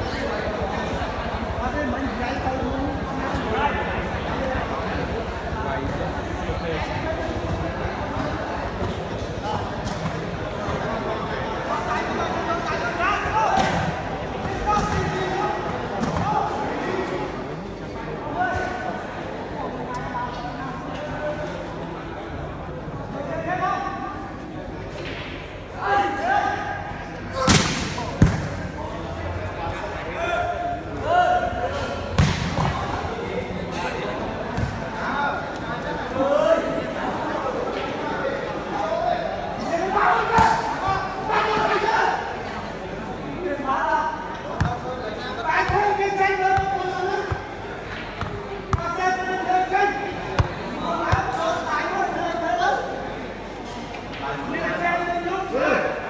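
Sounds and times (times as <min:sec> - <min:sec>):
volleyball being struck: 0:27.4 - 0:28.6, 0:32.1 - 0:32.8.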